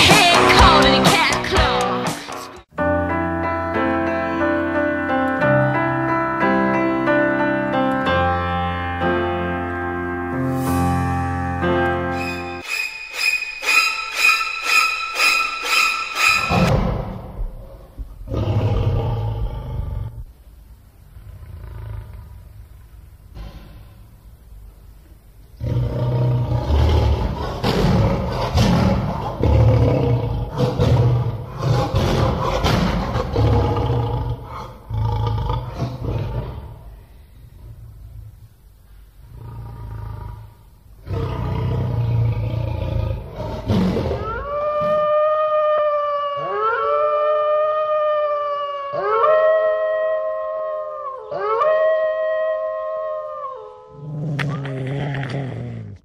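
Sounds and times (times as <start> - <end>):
deep growling roar with crackles: 21.1 - 22.6, 54.1 - 56.0
low rough animal-like sound: 53.9 - 56.0.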